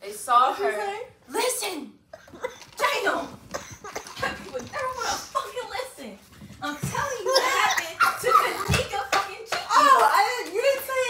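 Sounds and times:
hand claps: 8.7s - 11.0s.

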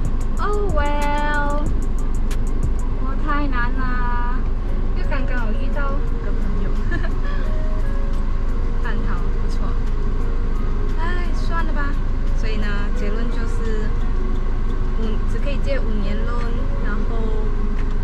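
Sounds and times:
background music with steady beat: 0.0s - 18.0s
car cabin rumble: 0.0s - 18.0s
woman talking: 0.4s - 1.7s, 3.0s - 7.5s, 8.8s - 9.9s, 11.0s - 14.0s, 15.0s - 17.7s.

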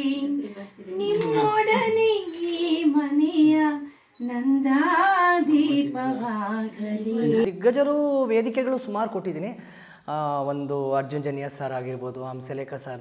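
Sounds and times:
high solo voice singing: 0.0s - 7.5s.

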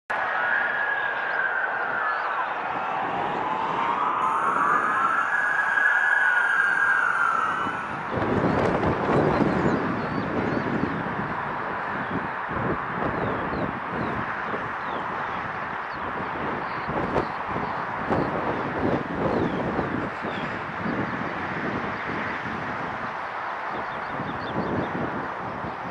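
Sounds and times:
fire truck sirens wailing: 0.1s - 22.2s
gusty rumbling noise: 0.2s - 25.9s.

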